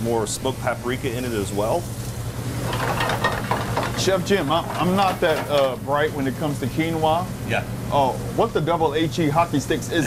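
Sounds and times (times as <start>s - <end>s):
steady low hum: 0.0s - 10.0s
food sizzling in pans: 0.4s - 7.4s.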